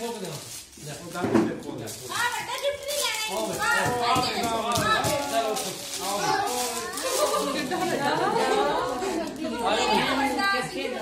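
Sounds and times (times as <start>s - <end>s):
children's voices: 2.1s - 11.0s
voices talking and calling out: 2.1s - 11.0s.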